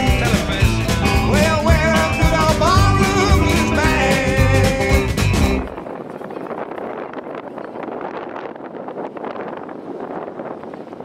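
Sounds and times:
blues band playing: 0.0 - 5.8
wind on microphone: 0.0 - 11.0.

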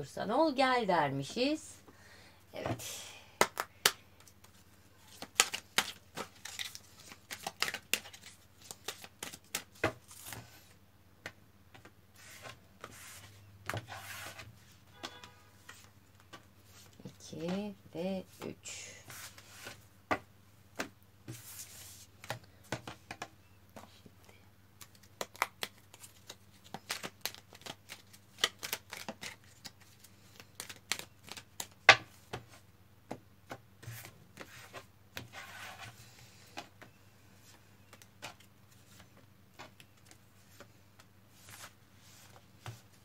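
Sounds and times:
cards sliding rustle: 4.4 - 10.7, 12.2 - 14.7, 24.9 - 31.4, 37.4 - 43.0.

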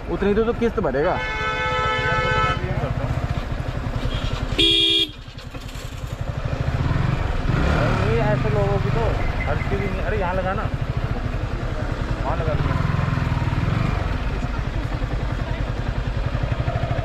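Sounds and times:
motorcycle engine running: 0.0 - 17.0
vehicle horn: 1.0 - 2.8, 4.1 - 5.2.

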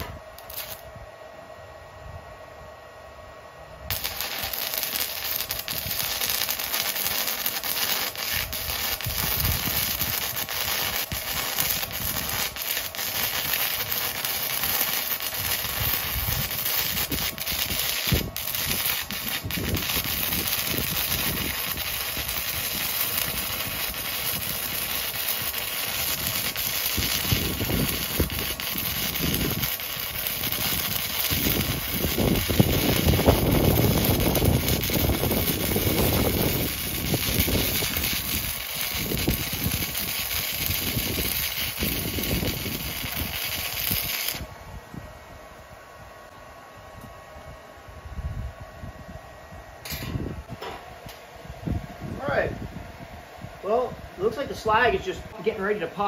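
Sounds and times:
welding arc crackling and hissing: 0.0 - 0.9, 3.9 - 44.5.

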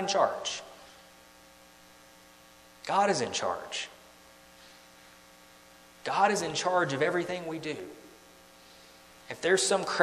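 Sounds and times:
man's voice: 0.0 - 0.8, 2.8 - 4.0, 6.1 - 8.0, 9.3 - 10.0
electrical mains hum: 0.0 - 10.0.

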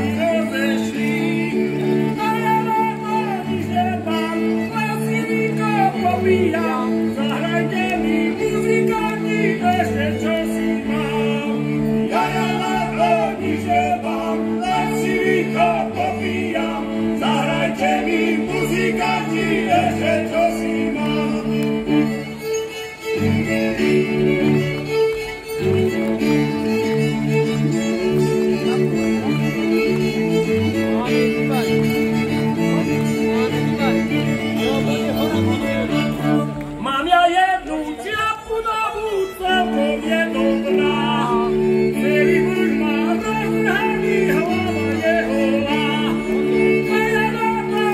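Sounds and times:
men singing in harmony: 0.0 - 22.1, 36.2 - 47.9
fiddle chords: 0.0 - 47.9
voices singing ornamented melody: 7.8 - 21.9.

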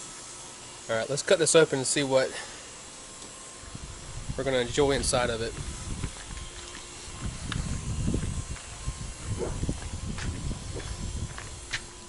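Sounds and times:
wind rumble on microphone: 3.7 - 12.0.

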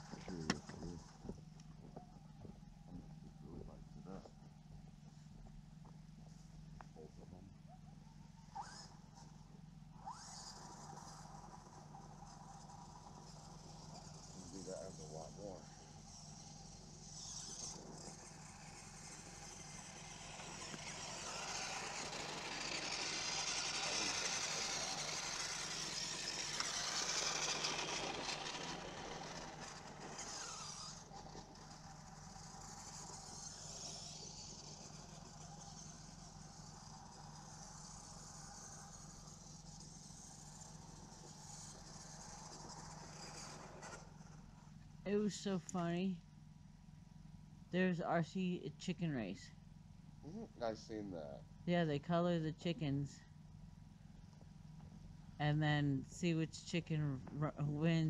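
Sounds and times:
remote control truck driving on dirt: 0.0 - 4.4, 7.9 - 46.2.

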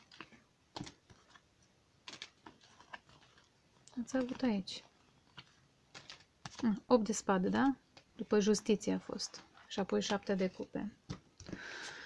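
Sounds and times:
woman speaking: 3.9 - 4.9, 6.6 - 11.0.

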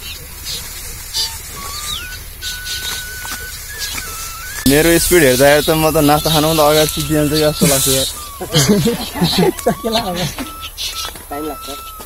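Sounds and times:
sickle cutting dry rice stalks: 0.0 - 10.5
thin whistle-like tone: 1.1 - 12.0.

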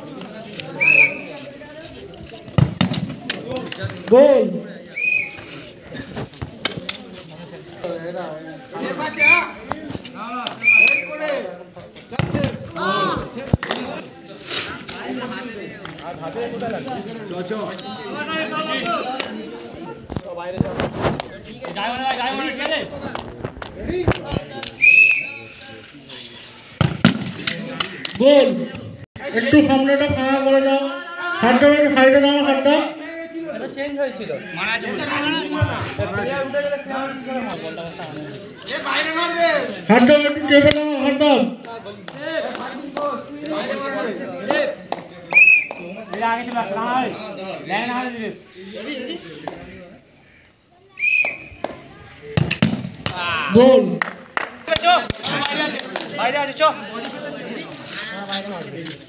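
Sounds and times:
low crowd chatter: 0.0 - 59.0
referee's whistle blast: 0.8 - 1.3, 10.6 - 11.2, 24.8 - 25.5, 51.0 - 51.5
football being kicked: 12.2 - 12.8, 26.8 - 27.4.

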